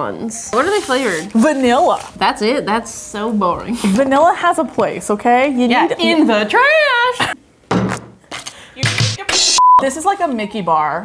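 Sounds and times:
high-pitched censor bleep: 0:09.5 - 0:09.8.

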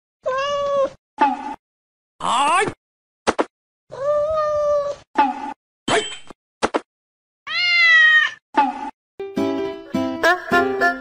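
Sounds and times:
cat meowing: 0:00.2 - 0:01.0, 0:03.9 - 0:05.0, 0:07.5 - 0:08.4.

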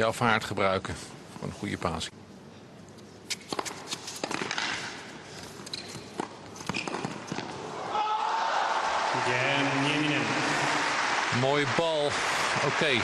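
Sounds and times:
crowd noise: 0:07.6 - 0:13.0.

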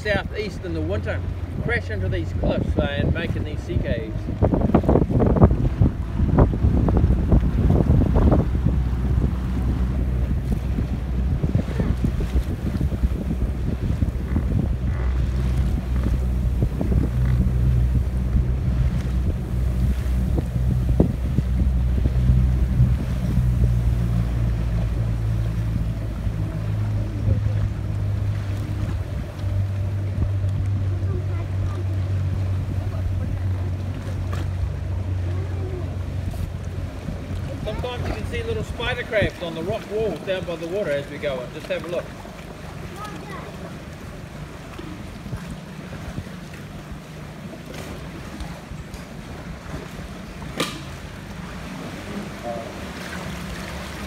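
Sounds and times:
wind buffeting microphone: 0:00.0 - 0:41.5
boat engine droning: 0:00.0 - 0:54.0.

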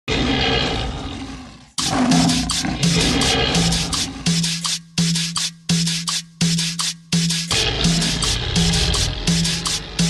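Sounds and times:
lion roaring: 0:00.1 - 0:04.4, 0:07.5 - 0:09.4
cumbia music with scraping percussion: 0:02.1 - 0:10.0.

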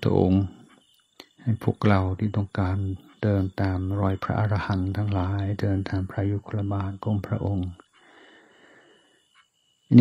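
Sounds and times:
man speaking: 0:00.0 - 0:07.8
man breathing in: 0:08.0 - 0:09.3.

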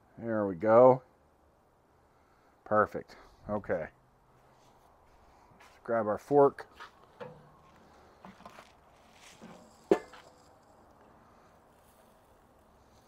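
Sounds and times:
grill handling sounds: 0:06.8 - 0:10.6.

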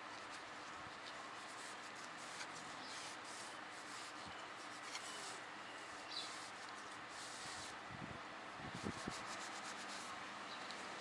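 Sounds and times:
cloth rag wiping metal: 0:00.1 - 0:07.8.

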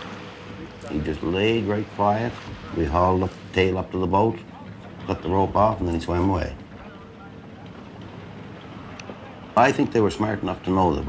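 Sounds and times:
boat engine: 0:00.0 - 0:11.0
water noise: 0:00.0 - 0:11.0.

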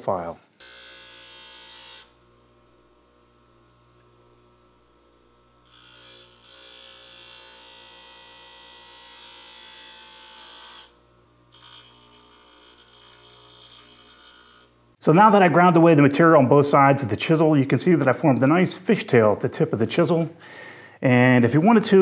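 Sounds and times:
bench grinder motor hum: 0:00.5 - 0:15.0.

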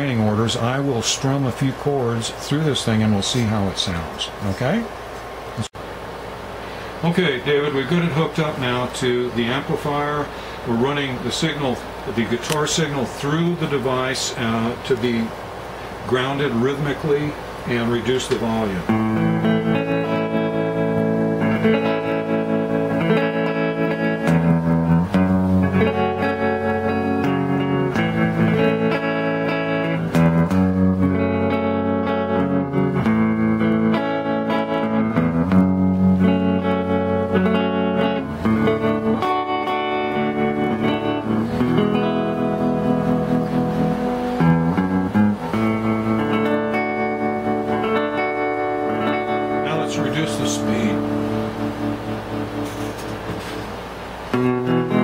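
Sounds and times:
electric guitar chords with tremolo: 0:18.3 - 0:55.0.

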